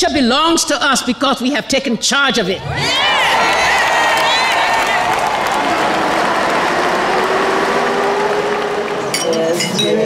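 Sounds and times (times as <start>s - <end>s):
street traffic roar: 5.0s - 10.0s.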